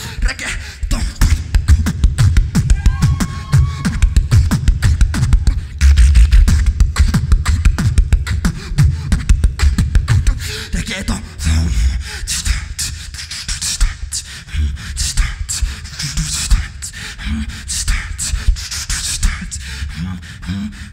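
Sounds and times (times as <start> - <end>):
person beatboxing: 0.0 - 20.9.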